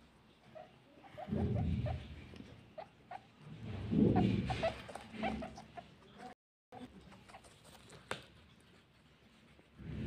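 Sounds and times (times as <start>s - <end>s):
guinea pigs clucking: 0.0s - 9.0s.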